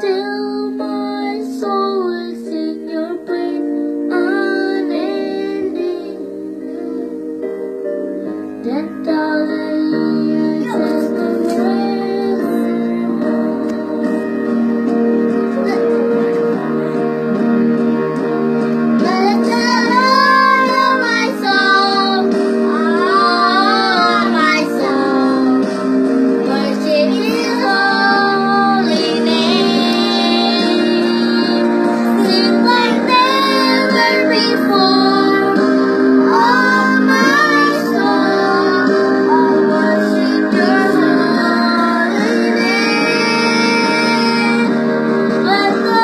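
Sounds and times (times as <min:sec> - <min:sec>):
children singing worship song: 0:00.0 - 0:07.8, 0:08.6 - 0:17.6, 0:18.2 - 0:46.0
instrumental accompaniment: 0:00.0 - 0:46.0.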